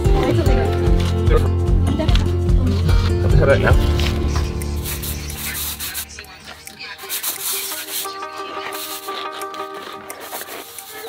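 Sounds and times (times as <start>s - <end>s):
background music: 0.0s - 11.0s
trowel scraping tiles in mortar: 4.8s - 11.0s.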